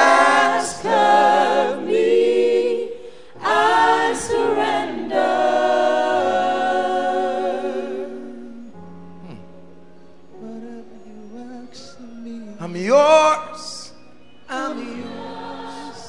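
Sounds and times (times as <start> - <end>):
voices singing worship song: 0.0 - 9.0, 10.4 - 16.0.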